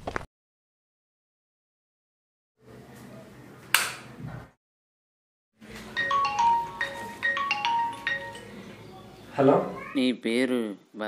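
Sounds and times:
marimba melody ringing on a phone: 5.9s - 8.7s.

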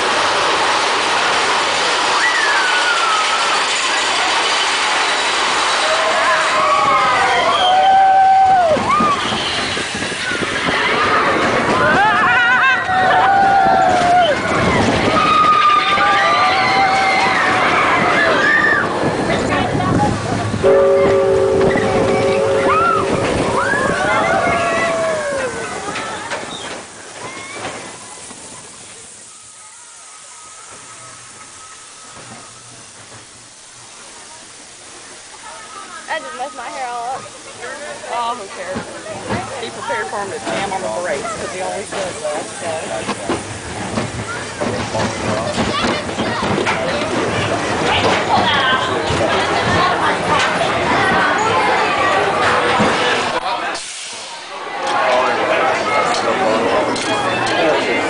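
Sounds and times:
roller coaster train rumbling: 0.0s - 58.0s.

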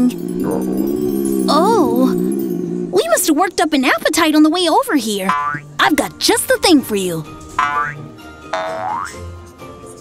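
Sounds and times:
cartoon rising pitch glide: 0.0s - 3.4s
light background music: 2.9s - 10.0s.

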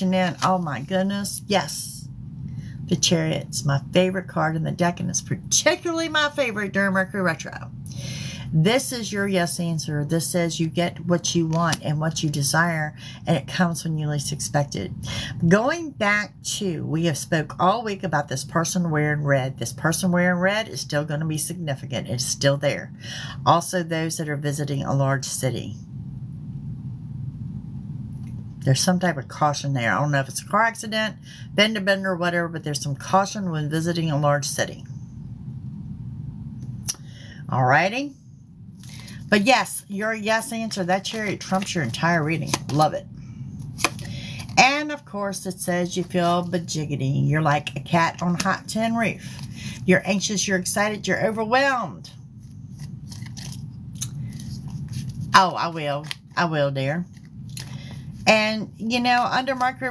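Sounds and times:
low steady hum: 0.0s - 59.9s
steady low rumble: 0.0s - 59.9s.

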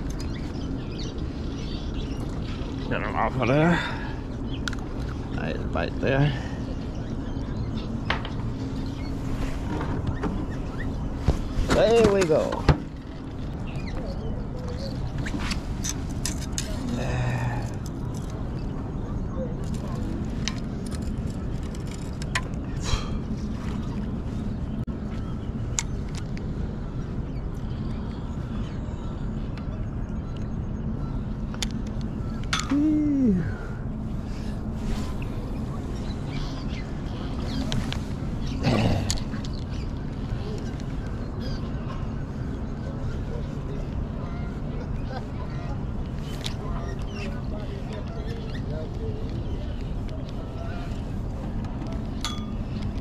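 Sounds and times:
low outdoor background noise: 0.0s - 53.0s.

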